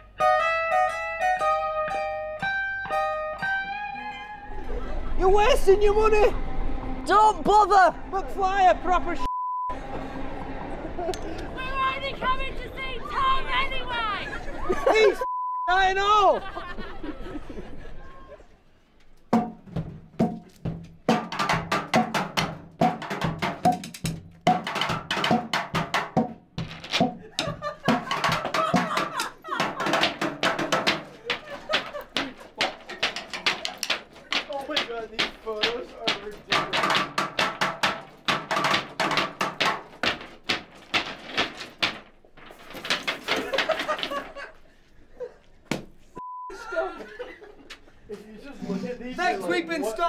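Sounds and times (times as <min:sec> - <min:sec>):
sticks beating metal dustbin: 0:19.3 - 0:44.5
sticks hitting metal railings: 0:19.3 - 0:44.6
sticks hitting wooden board: 0:20.2 - 0:44.5.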